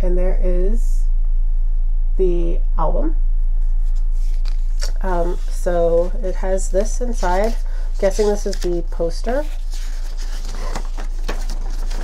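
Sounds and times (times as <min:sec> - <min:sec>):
low electrical hum: 0:00.0 - 0:12.0
paper rustling: 0:03.8 - 0:12.0.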